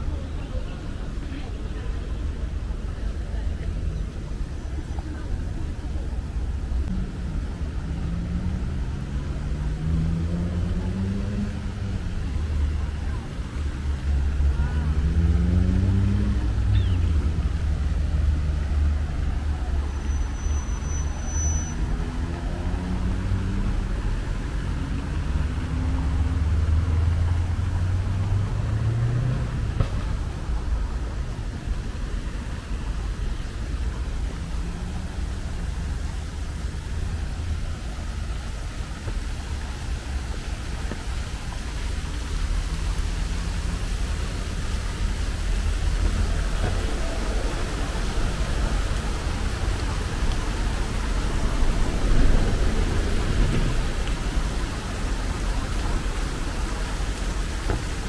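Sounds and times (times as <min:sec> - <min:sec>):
traffic low rumble: 0:00.0 - 0:58.0
vehicles accelerating past: 0:00.0 - 0:58.0.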